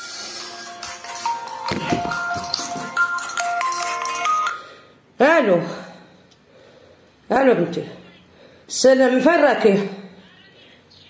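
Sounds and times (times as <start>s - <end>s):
phone ringtone melody: 0.7s - 4.8s.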